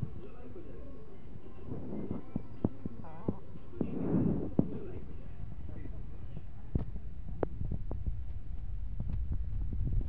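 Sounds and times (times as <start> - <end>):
wind rumbling on microphone: 1.6 - 10.0.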